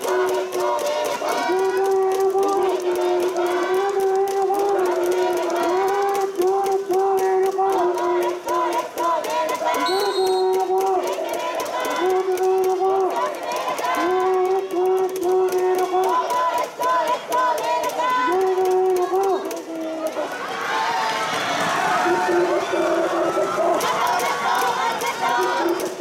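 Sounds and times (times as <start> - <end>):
spectators chanting: 0.0 - 26.0.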